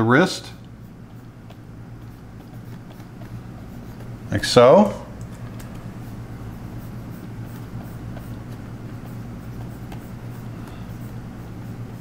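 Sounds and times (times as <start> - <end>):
low electrical hum: 0.0 - 12.0
stylus scratching on tablet: 0.3 - 4.7, 5.7 - 12.0.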